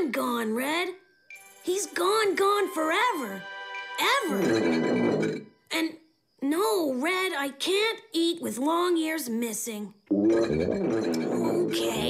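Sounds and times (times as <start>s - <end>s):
wavering cartoon voice: 10.1s - 12.0s.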